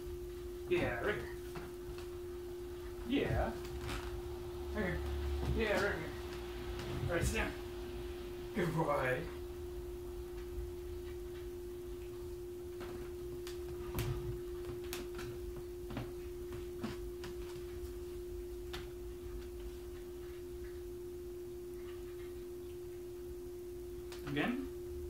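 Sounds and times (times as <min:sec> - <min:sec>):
steady mid-pitched hum: 0:00.0 - 0:25.0.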